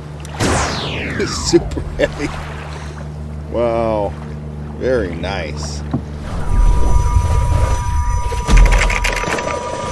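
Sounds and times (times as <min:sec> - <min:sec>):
low rumble: 0:00.3 - 0:03.6, 0:06.0 - 0:09.9
sharp hit: 0:00.4 - 0:02.8
high ringing tone: 0:06.2 - 0:09.9.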